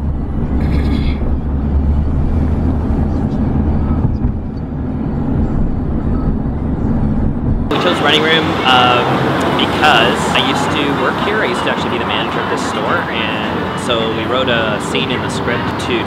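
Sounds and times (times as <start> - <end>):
street traffic rumble: 0.0 - 16.0
man speaking: 7.7 - 16.0.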